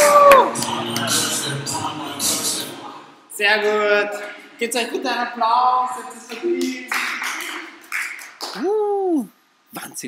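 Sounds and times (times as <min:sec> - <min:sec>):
small group applauding: 0:00.0 - 0:01.1, 0:06.6 - 0:09.0.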